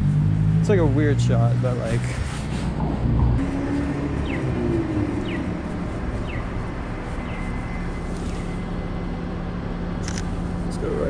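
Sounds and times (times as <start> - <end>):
street traffic passing: 0.0 - 11.0.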